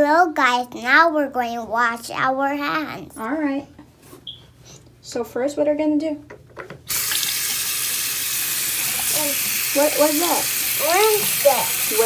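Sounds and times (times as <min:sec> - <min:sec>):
faucet water running into basin: 0:06.9 - 0:12.0.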